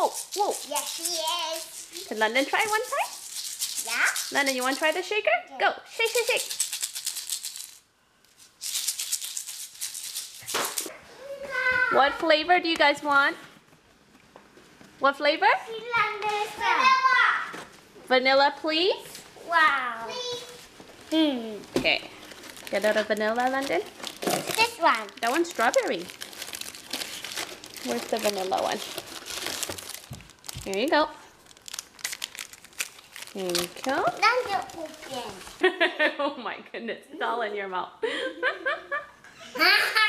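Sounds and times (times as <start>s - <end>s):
plastic wrappers crinkling in box: 0.0s - 5.0s, 6.0s - 7.8s, 22.1s - 35.6s
egg shaker rattling beads: 0.0s - 5.2s, 5.9s - 10.9s, 22.2s - 35.6s.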